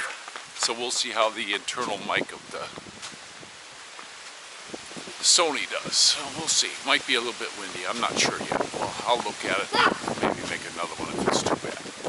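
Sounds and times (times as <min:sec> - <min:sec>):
wind rustling leaves: 0:00.0 - 0:12.0
wind on microphone: 0:01.2 - 0:03.7, 0:04.6 - 0:12.0.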